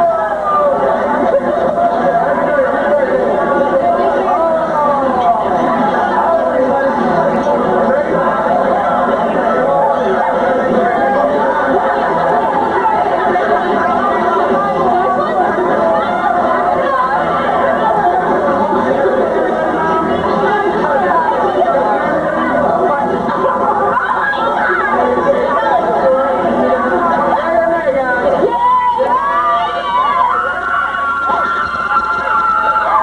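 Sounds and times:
crowd babble in restaurant: 0:00.0 - 0:33.0.

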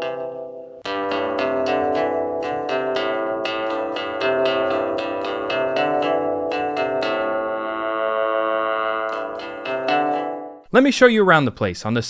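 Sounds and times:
synth melody of struck notes: 0:00.0 - 0:10.7.

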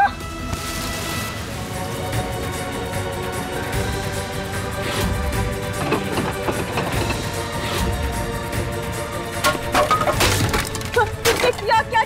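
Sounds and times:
background music: 0:00.0 - 0:12.0
wooden logs knocking and clattering: 0:05.4 - 0:07.7, 0:09.4 - 0:12.0.

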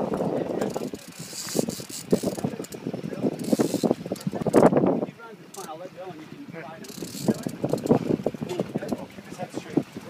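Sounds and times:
fishing reel ratcheting: 0:00.1 - 0:04.7, 0:05.5 - 0:05.8, 0:06.8 - 0:09.0.

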